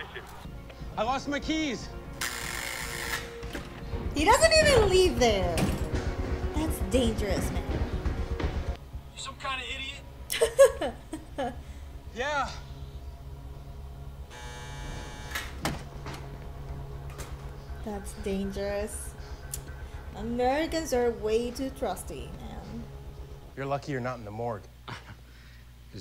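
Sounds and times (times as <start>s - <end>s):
door-release buzzer buzzing: 2.2s - 3.5s, 14.3s - 15.8s
faint steady hum: 16.4s - 26.0s.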